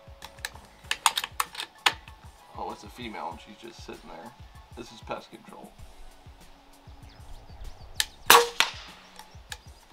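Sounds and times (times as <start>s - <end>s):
airgun shot cracks: 8.0s - 9.1s.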